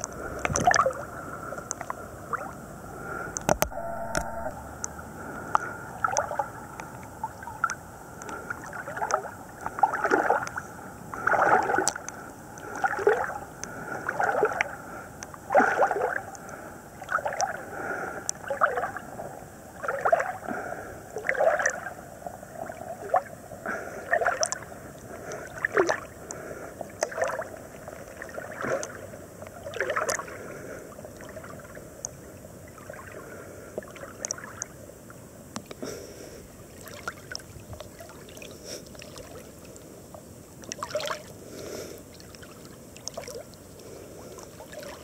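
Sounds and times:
water splashing from swimming: 0.0 - 4.5, 5.2 - 14.8, 15.5 - 17.6, 27.0 - 29.0, 40.6 - 41.3.

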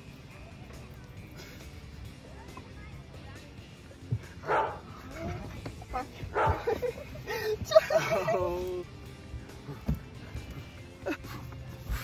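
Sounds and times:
dog barking: 4.4 - 4.9, 6.3 - 6.7
people laughing and exclaiming: 5.0 - 9.0.

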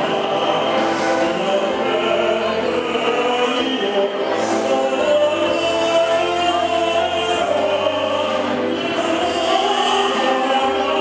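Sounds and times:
choral backing track: 0.0 - 11.0
man singing operatically: 0.0 - 11.0.

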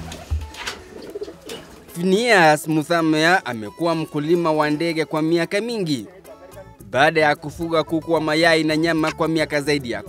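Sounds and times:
pigeons cooing: 0.0 - 1.9
guitar music: 2.6 - 10.0.

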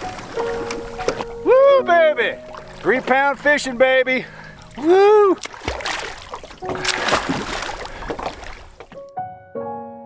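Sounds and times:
swimmer splashing lake water: 0.0 - 9.0.

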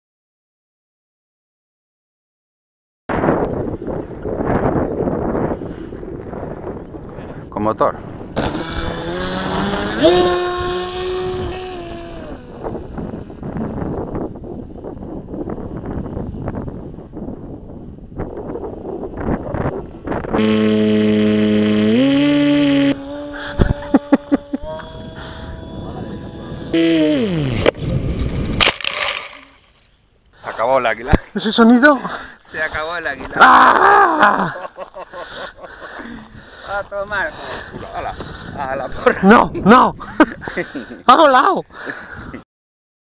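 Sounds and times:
wind noise on microphone: 3.1 - 28.9, 36.1 - 41.0
electric motor whining: 8.3 - 13.3, 20.4 - 28.0.

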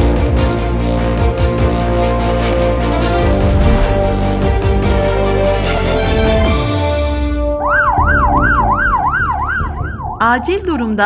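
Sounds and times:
emergency siren yelping: 7.5 - 10.2.

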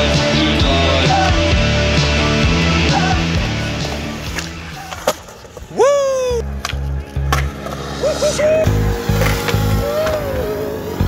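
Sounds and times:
rock music: 0.0 - 5.1, 6.2 - 11.0.

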